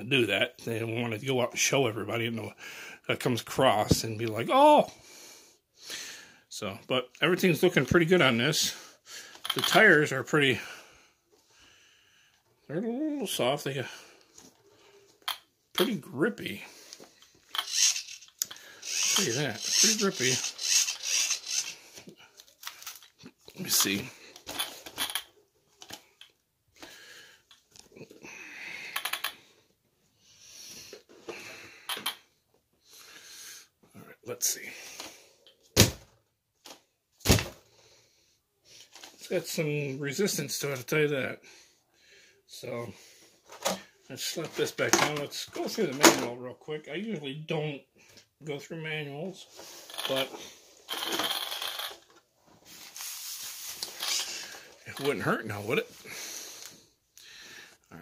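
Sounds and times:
plastic toy scraping and rustling: 17.5s - 26.0s, 49.4s - 55.3s.

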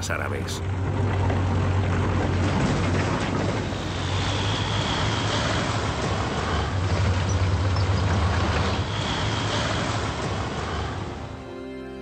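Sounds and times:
bulldozer engine droning: 0.0s - 12.0s
noisy hiss: 3.6s - 11.5s.

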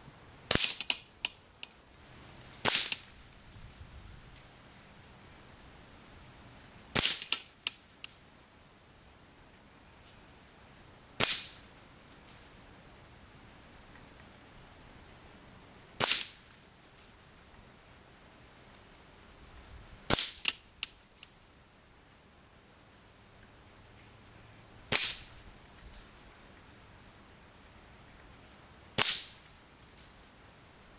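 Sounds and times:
air rifle shot: 0.5s - 1.0s, 2.6s - 3.1s, 7.0s - 7.5s, 11.2s - 11.6s, 16.0s - 16.4s, 20.1s - 20.6s, 24.9s - 25.3s, 29.0s - 29.4s
metallic clacks of target: 0.5s - 1.4s, 29.0s - 30.2s
air rifle shot hitting steel: 24.9s - 25.3s, 29.0s - 29.4s.

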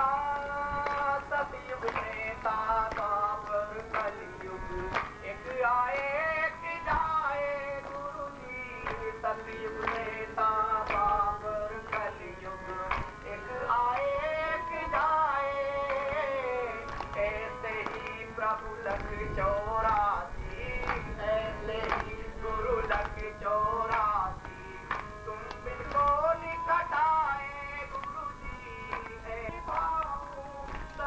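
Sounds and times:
instrumental accompaniment: 0.0s - 31.0s
man singing devotional song: 0.0s - 31.0s
percussion strikes: 0.1s - 6.2s, 8.8s - 31.0s.

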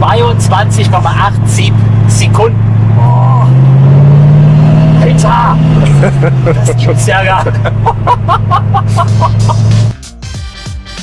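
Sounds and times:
car engine running: 0.0s - 10.3s
man laughing: 5.7s - 9.9s.

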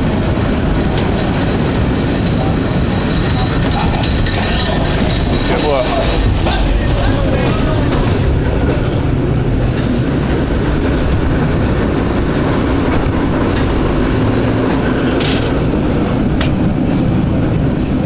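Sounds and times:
cable car rumble and rattle: 0.0s - 18.0s.

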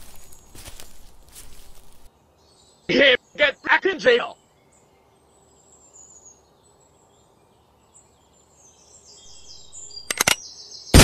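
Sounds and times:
faint birds chirping: 0.0s - 11.0s
sharp clicks: 10.0s - 10.4s.

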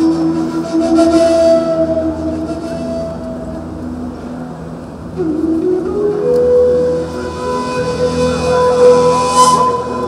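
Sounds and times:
flute holding long note: 0.0s - 4.1s, 5.0s - 10.0s.

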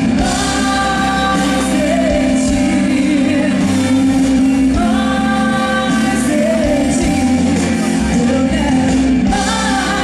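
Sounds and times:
electric guitar: 0.0s - 10.0s
gospel band playing: 0.0s - 10.0s
keyboard: 0.0s - 10.0s
woman singing lead: 0.0s - 10.0s.

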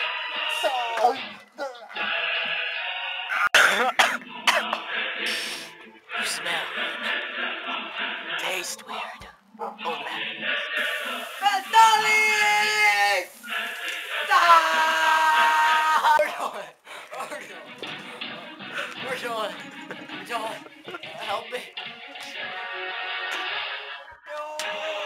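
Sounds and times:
background music: 0.0s - 25.0s
man yelling: 11.4s - 13.4s, 14.2s - 16.7s.

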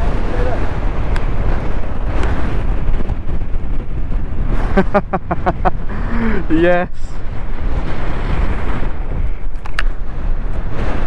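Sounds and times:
steady low rumble: 0.0s - 11.0s
person laughing: 4.6s - 6.5s.

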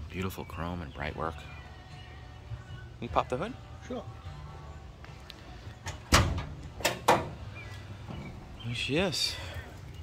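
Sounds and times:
car hood metallic clunks: 5.9s - 7.4s.

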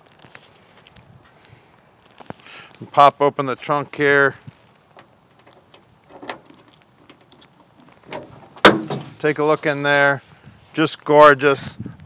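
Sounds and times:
key turning in lock: 5.0s - 8.2s.

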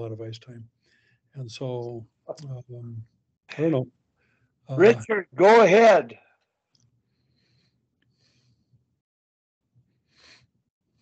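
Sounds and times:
man speaking: 0.0s - 0.6s, 1.4s - 3.9s, 4.7s - 6.2s.

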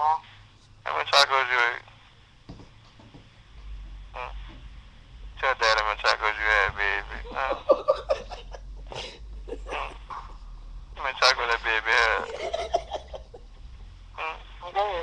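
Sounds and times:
low hum: 0.0s - 15.0s
indistinct voices: 5.4s - 10.4s, 11.0s - 13.4s.

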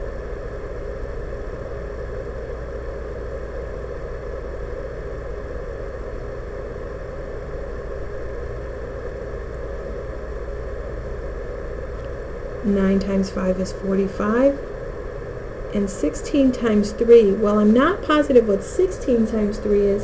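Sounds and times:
steady mechanical hum: 0.0s - 20.0s.

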